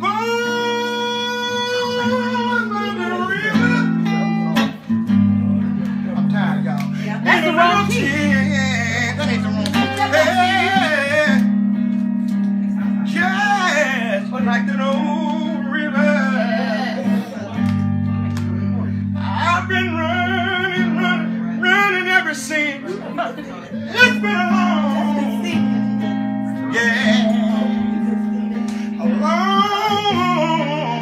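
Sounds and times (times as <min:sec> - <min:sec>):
man singing wordless phrases: 0:00.0 - 0:04.6, 0:06.2 - 0:11.5, 0:12.8 - 0:17.6, 0:18.6 - 0:31.0
guitar chords: 0:00.0 - 0:31.0.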